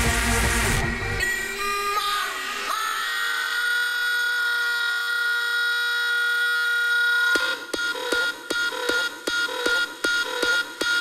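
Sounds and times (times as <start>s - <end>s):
hard kick drums: 0.0s - 1.2s
held synthesizer chords: 0.0s - 4.2s.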